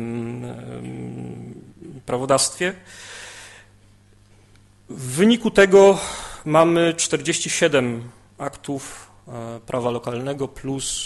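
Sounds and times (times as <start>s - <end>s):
man's drawn-out hesitation sound: 0.0s - 2.9s.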